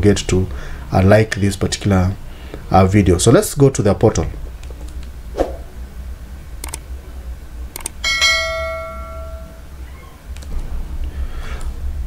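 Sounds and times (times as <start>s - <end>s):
notification bell chime: 8.1s - 9.6s.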